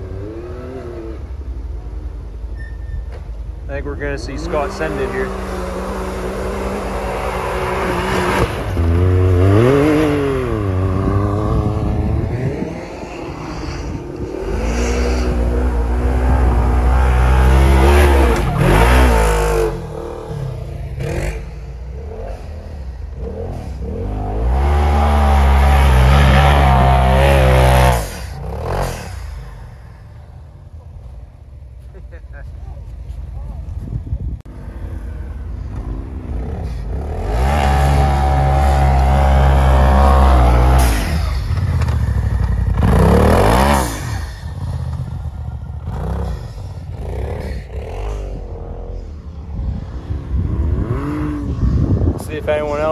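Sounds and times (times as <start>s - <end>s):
utility vehicle engine revving: 3.9s - 30.5s, 34.5s - 52.9s.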